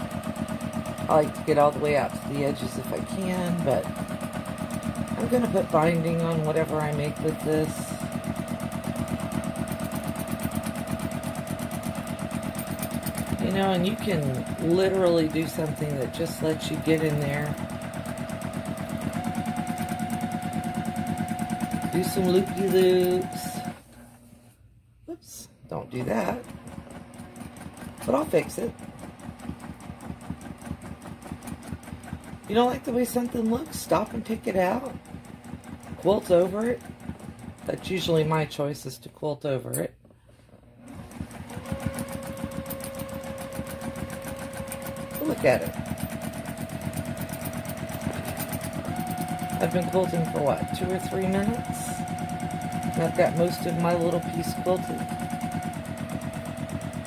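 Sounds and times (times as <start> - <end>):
sewing machine motor whine: 0.0 - 24.3, 25.8 - 38.6, 40.8 - 57.0.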